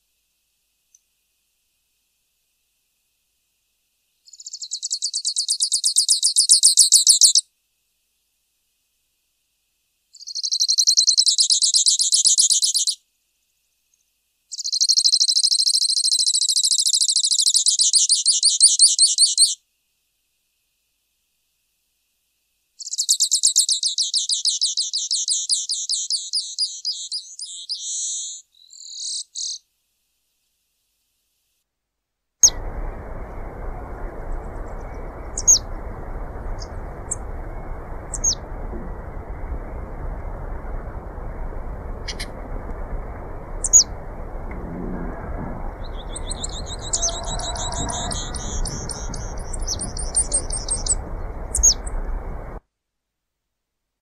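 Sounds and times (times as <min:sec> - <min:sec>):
low hiss: 0:00.0 - 0:05.2, 0:28.0 - 0:52.8
finch singing high trills: 0:32.4 - 0:39.9, 0:43.2 - 0:44.5, 0:45.2 - 0:52.6.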